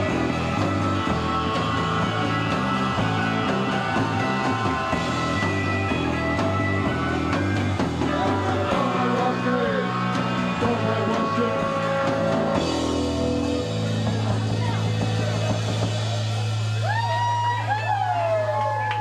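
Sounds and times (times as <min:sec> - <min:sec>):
drum kit: 0:00.0 - 0:18.4
bass guitar: 0:00.0 - 0:19.0
electric guitar: 0:00.0 - 0:19.0.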